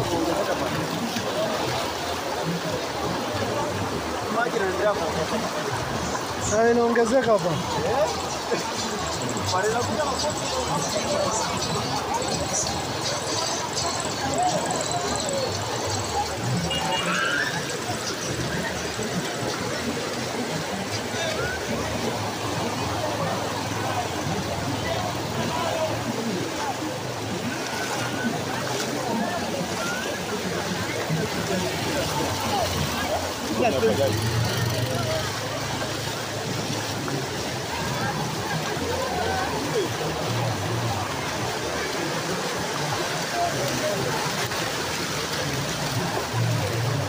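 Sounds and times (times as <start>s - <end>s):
people talking: 0.0s - 47.0s.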